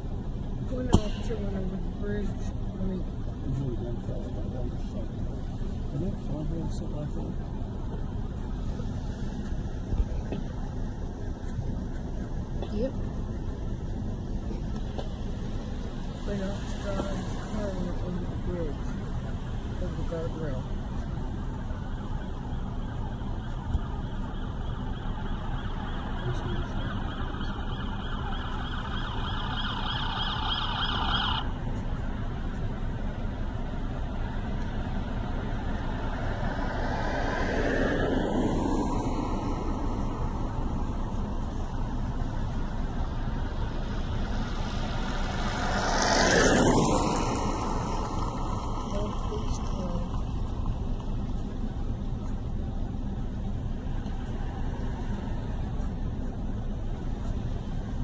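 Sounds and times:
highway traffic rumble: 0:00.0 - 0:58.0
vehicles passing: 0:00.0 - 0:58.0
siren-like tone: 0:21.4 - 0:31.6.

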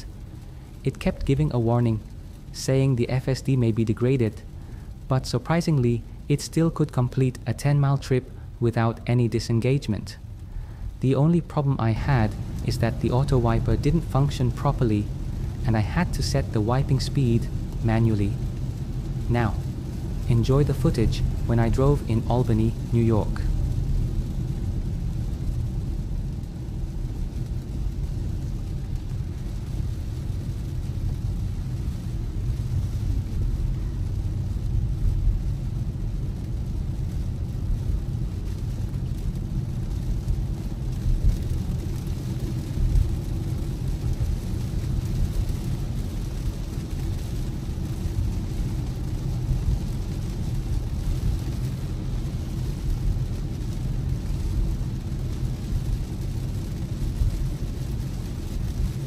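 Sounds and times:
rain on car: 0:00.0 - 0:59.0
tyres rumbling on wet road: 0:00.0 - 0:59.0.

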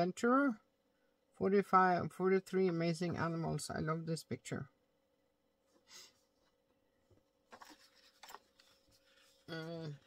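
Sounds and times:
paper rustling: 0:07.4 - 0:10.0.

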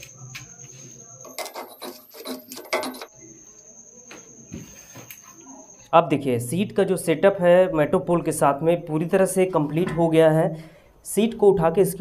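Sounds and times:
cricket trilling: 0:00.0 - 0:07.5.

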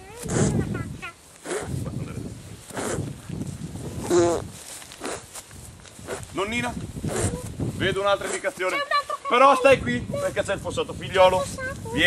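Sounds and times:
footsteps through long grass: 0:00.1 - 0:12.0.

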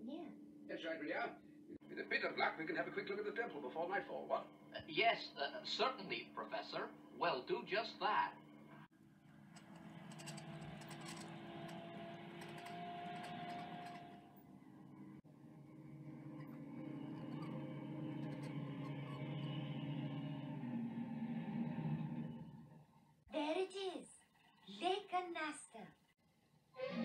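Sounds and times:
toy vehicle engine drone: 0:08.9 - 0:14.6, 0:15.3 - 0:22.8.

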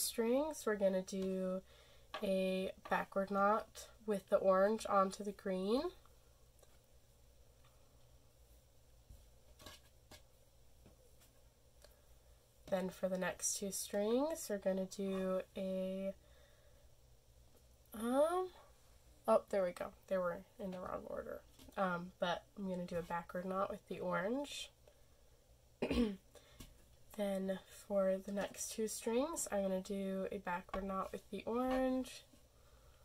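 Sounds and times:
person clearing throat: 0:25.8 - 0:26.2.

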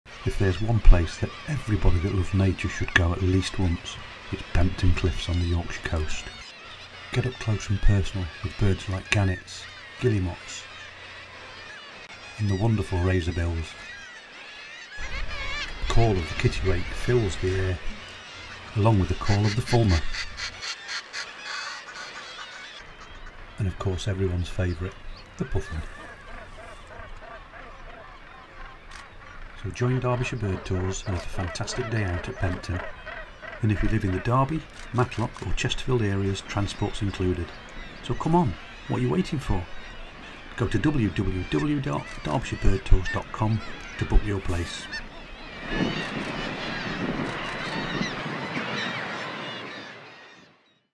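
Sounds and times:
seabird cackling calls: 0:00.1 - 0:50.7.

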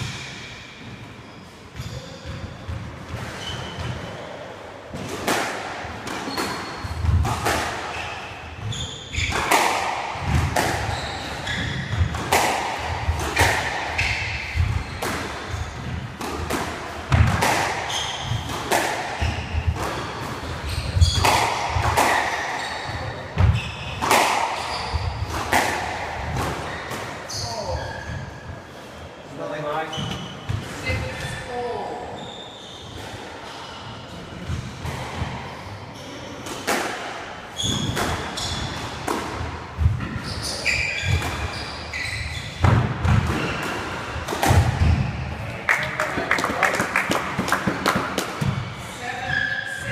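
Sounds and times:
shoe squeaks on wooden floor: 0:06.3 - 0:07.1, 0:07.9 - 0:09.5, 0:10.8 - 0:12.1, 0:17.8 - 0:18.5, 0:19.2 - 0:21.3, 0:22.5 - 0:24.0, 0:24.6 - 0:25.3, 0:26.6 - 0:28.4, 0:29.8 - 0:31.4, 0:32.0 - 0:34.1, 0:37.5 - 0:39.0, 0:40.1 - 0:42.7.

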